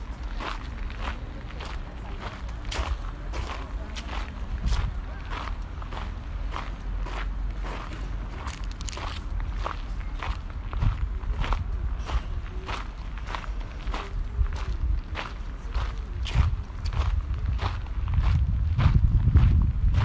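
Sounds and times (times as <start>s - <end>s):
footsteps on gravel: 0.0s - 20.0s.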